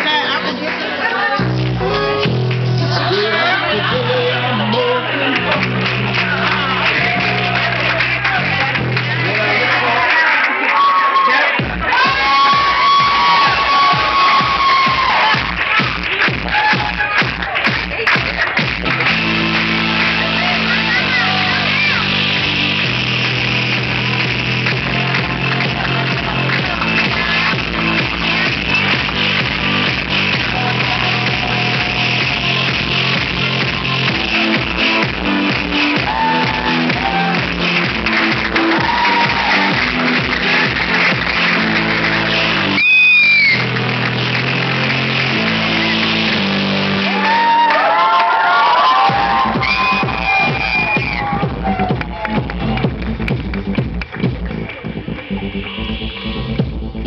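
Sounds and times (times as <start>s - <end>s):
crowd voices: 0.0s - 57.0s
dance music over sound system: 0.0s - 57.0s.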